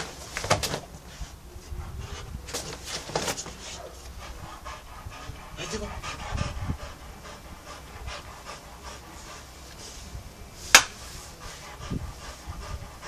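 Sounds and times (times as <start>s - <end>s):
dog panting: 1.3s - 13.0s.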